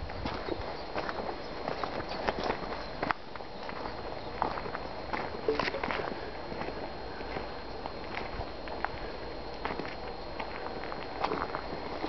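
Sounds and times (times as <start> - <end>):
footsteps on gritty dirt: 0.0 - 12.0.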